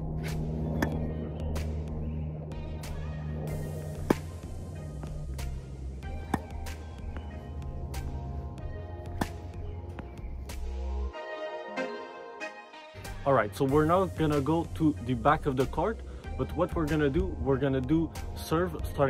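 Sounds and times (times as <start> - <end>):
background music: 0.0 - 19.0
tennis ball struck by racket: 0.1 - 1.9, 2.5 - 10.7.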